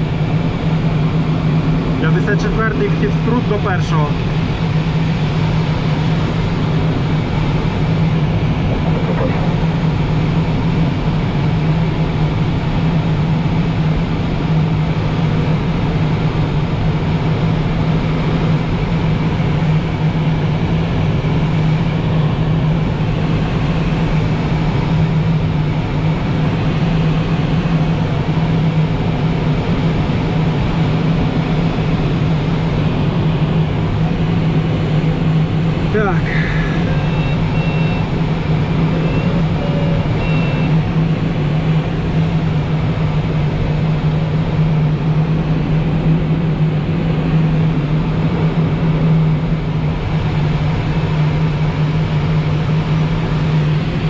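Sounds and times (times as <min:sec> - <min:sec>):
airflow rushing around glider: 0:00.0 - 0:54.0
wind noise on microphone: 0:04.8 - 0:14.4.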